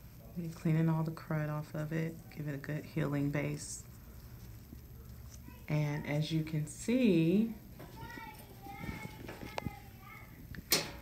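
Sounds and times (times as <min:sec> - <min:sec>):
faint background voices: 0:02.0 - 0:10.5.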